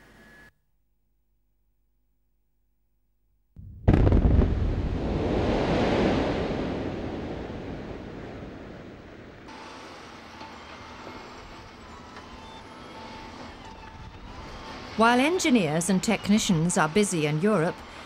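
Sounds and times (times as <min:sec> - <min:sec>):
rock blasting explosion: 0:03.6 - 0:09.5
long rumble: 0:03.6 - 0:09.6
diesel engine of wheel loader: 0:09.5 - 0:18.0.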